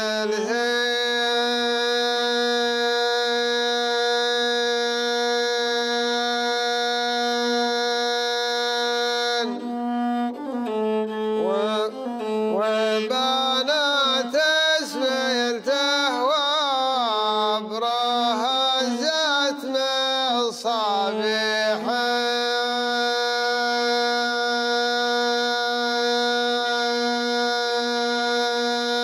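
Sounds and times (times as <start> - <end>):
man singing chant-like: 0.0 - 9.7, 11.4 - 29.0
bowed one-string fiddle: 0.0 - 29.0.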